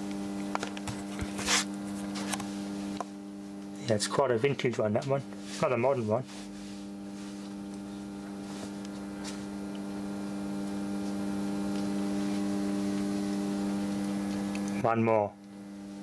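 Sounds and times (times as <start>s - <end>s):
mains hum: 0.0s - 16.0s.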